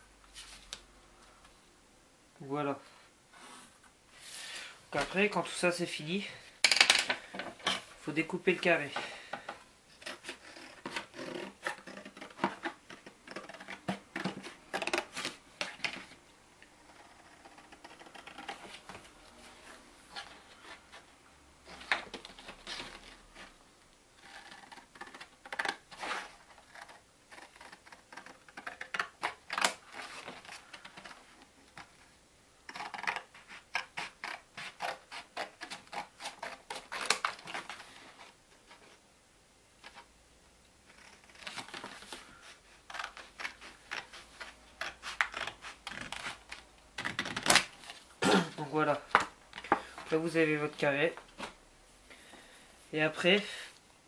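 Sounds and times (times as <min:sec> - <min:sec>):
scissors snipping paper: 0:26.4 - 0:29.9
scissors snipping cardboard: 0:32.7 - 0:37.7.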